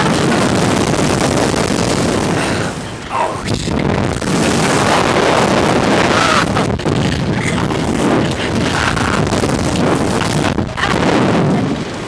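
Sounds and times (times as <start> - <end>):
wind rushing over microphone: 0.0 - 12.0.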